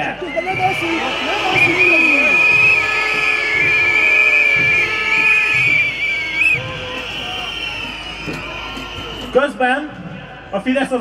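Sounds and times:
crowd noise: 0:00.0 - 0:11.0
shrill warbling whistle: 0:00.3 - 0:09.4.

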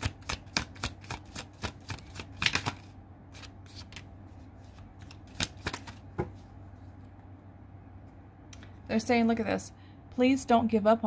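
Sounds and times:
cards snapping and slapping: 0:00.0 - 0:04.1, 0:04.7 - 0:06.2.

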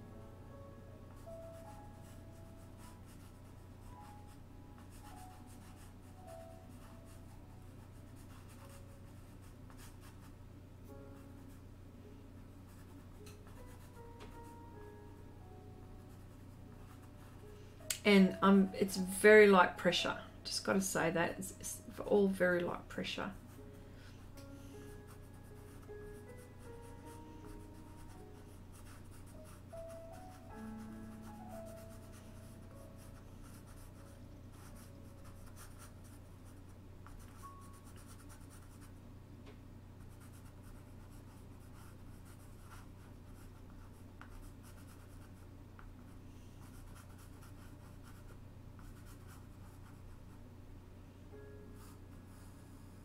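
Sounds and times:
soft background music: 0:00.0 - 0:53.0
steady low hum: 0:00.0 - 0:53.0
pencil scratching on paper: 0:25.1 - 0:25.9, 0:26.9 - 0:29.7, 0:31.7 - 0:36.2, 0:40.1 - 0:45.4, 0:46.6 - 0:50.1.

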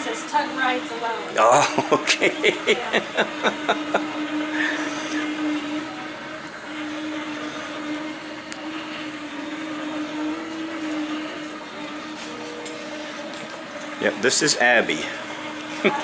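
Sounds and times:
robot motors humming: 0:00.0 - 0:16.0.

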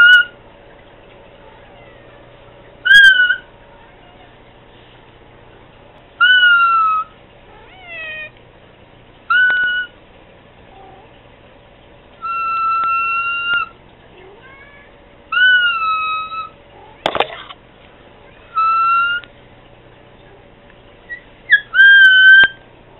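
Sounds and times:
cat meowing: 0:01.4 - 0:02.3, 0:06.4 - 0:08.4, 0:12.7 - 0:17.1.

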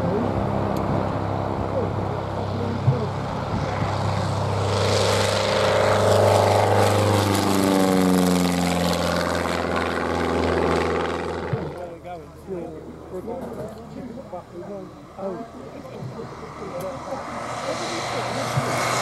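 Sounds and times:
propeller aircraft passing overhead: 0:00.0 - 0:19.0.

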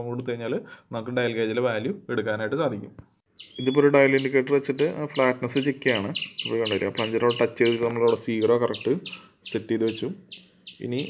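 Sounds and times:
high chirping: 0:03.3 - 0:11.0
man speaking: 0:03.6 - 0:10.2, 0:10.8 - 0:11.0.

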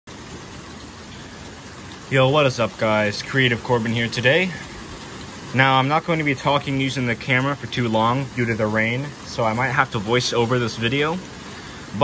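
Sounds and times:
rain falling: 0:00.1 - 0:12.0.

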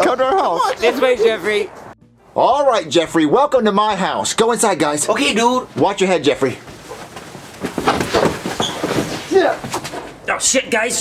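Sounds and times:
bumps knocks and rustling: 0:05.7 - 0:10.2.

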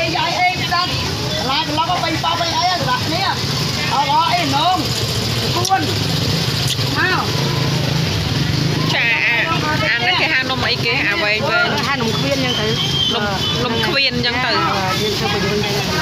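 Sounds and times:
people talking: 0:00.0 - 0:16.0
vehicle engine idling: 0:00.0 - 0:16.0.

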